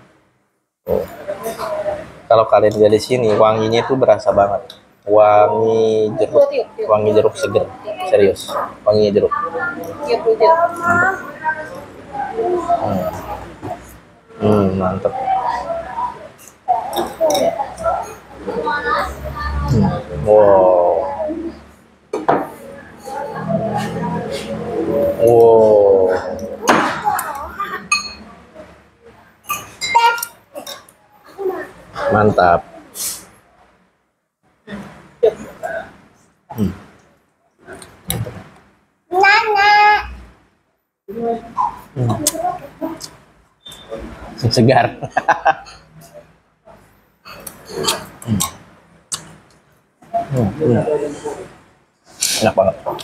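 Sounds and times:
man eating with mouth noises: 10.7 - 21.6, 22.5 - 27.5, 29.5 - 32.2, 32.8 - 33.3, 34.7 - 38.7, 41.3 - 44.5, 46.0 - 53.0.

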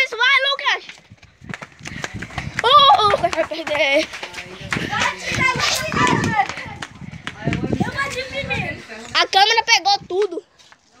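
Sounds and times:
running footsteps on dirt: 0.2 - 9.4.

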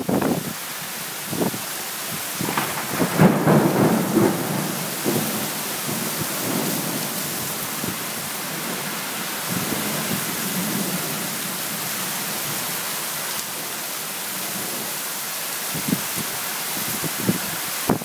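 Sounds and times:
steady rain: 0.0 - 18.0
thunder rumbling: 2.2 - 11.8.

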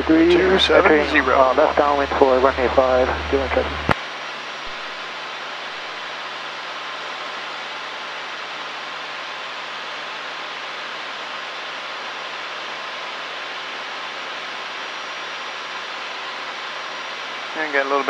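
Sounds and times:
aircraft cabin engine drone: 0.0 - 18.0.

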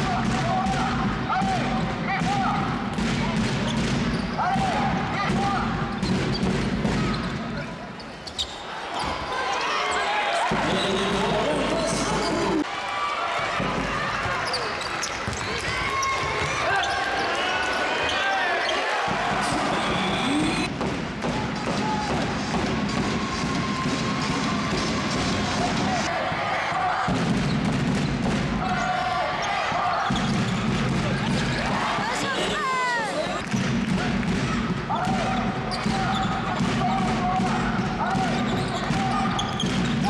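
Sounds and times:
basketball bouncing on court: 0.0 - 7.5, 27.0 - 29.0, 30.0 - 32.1, 33.4 - 40.0
voices and shouts: 15.4 - 20.7, 23.0 - 27.2, 28.6 - 30.3, 31.0 - 33.4.

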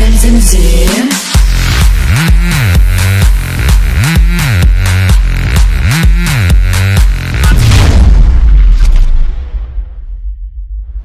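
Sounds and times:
deep cinematic boom with sweep: 7.3 - 11.0.

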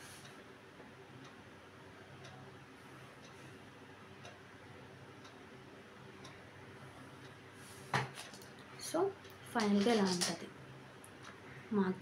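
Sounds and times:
faint clock ticking: 0.0 - 7.6, 10.5 - 12.0.

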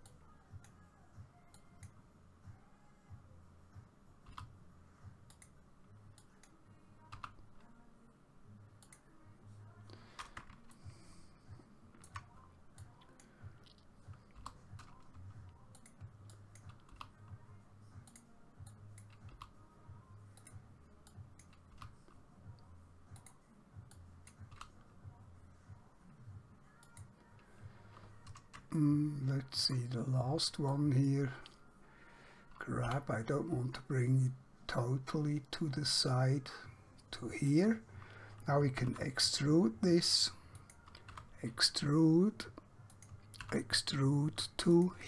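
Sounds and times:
low steady hum: 0.0 - 45.0
computer mouse clicks: 5.3 - 5.6, 12.0 - 17.1, 42.9 - 43.6.

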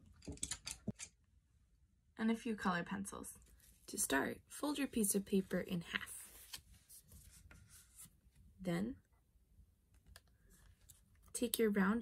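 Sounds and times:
paper rustling being folded: 5.4 - 8.2.

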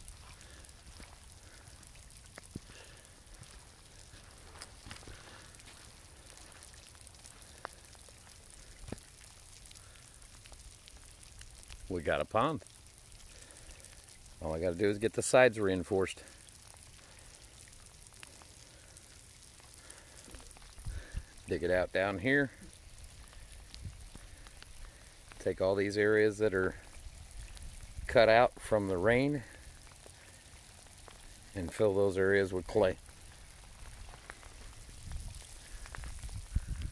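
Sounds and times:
low even hiss: 0.0 - 36.9
faint ticks: 0.2 - 11.9, 22.5 - 25.5
soft ticks: 2.1 - 2.7.

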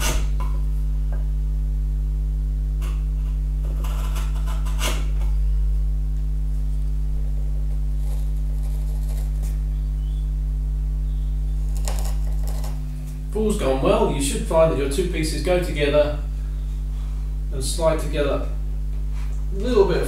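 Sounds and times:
chisel scraping wood: 0.0 - 0.5, 2.8 - 5.4, 7.7 - 9.6, 11.6 - 13.2
electrical hum: 0.0 - 20.0.

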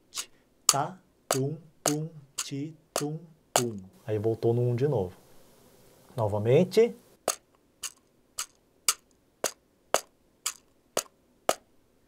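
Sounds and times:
hand drum tapped with fingers: 0.7 - 3.9.

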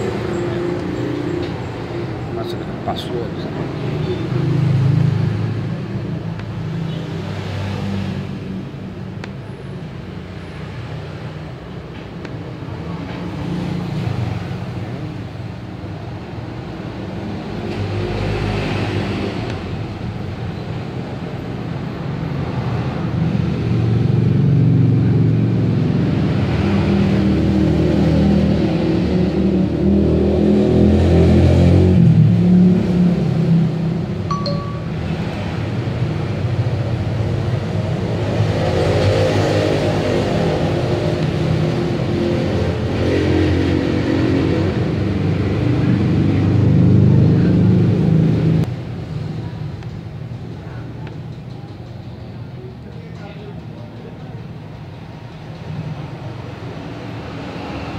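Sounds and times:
vehicles passing by: 0.0 - 57.9
high beep: 34.3 - 35.2.

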